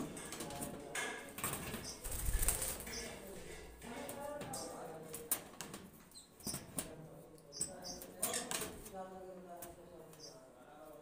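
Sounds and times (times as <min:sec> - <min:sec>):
bird wings flapping: 0:01.4 - 0:03.0.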